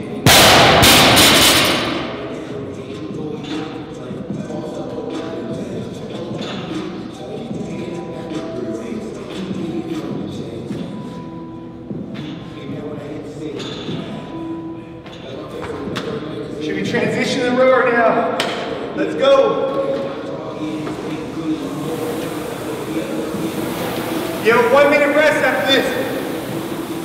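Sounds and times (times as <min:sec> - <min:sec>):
background music with singing: 0:00.0 - 0:27.0
rowing machine fan whoosh: 0:21.0 - 0:27.0.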